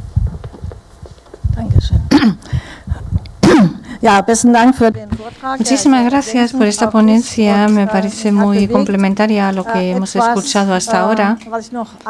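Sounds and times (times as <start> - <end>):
microphone handling bumps: 0.0 - 9.9
person clearing throat: 2.1 - 2.5, 3.4 - 3.9.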